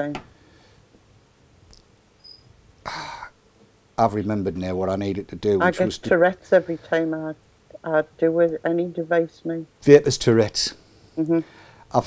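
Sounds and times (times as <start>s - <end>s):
person exhaling: 2.9s - 3.3s.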